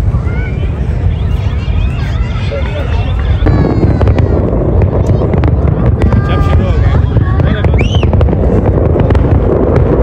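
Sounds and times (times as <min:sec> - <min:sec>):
fireworks exploding: 0:00.0 - 0:10.0
sharp fireworks bangs: 0:00.0 - 0:10.0.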